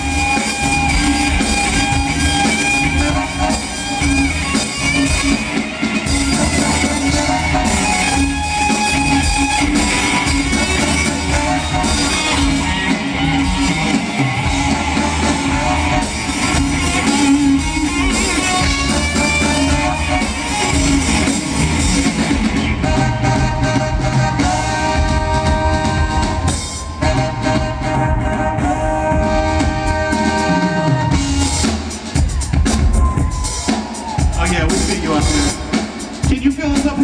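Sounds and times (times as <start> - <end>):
electric guitar lead: 0.0 - 31.7
drums: 0.0 - 37.0
live rock band: 0.0 - 37.0.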